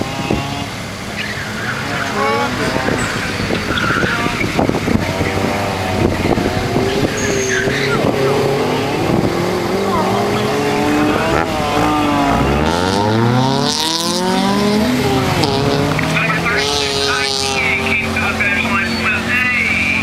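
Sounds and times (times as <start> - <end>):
car engine revving: 0.0 - 20.0
tyre squeal: 1.2 - 1.9, 3.0 - 4.6, 7.0 - 8.1.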